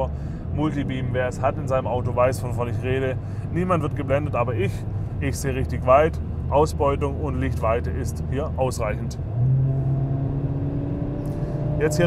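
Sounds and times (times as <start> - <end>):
car engine drone inside cabin: 0.0 - 12.0.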